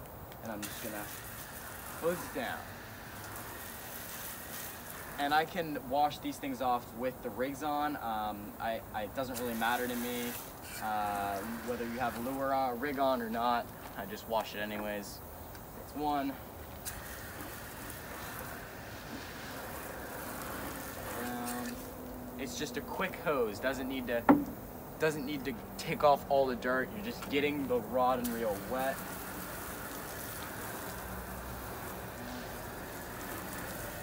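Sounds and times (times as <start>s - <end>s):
hose spraying water: 0.0s - 34.0s.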